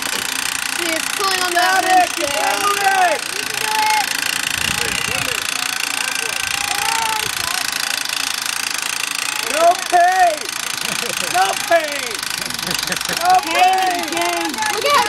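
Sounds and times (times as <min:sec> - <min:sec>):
winch mechanical rattle: 0:00.0 - 0:15.0
people talking: 0:00.8 - 0:07.8, 0:09.4 - 0:15.0.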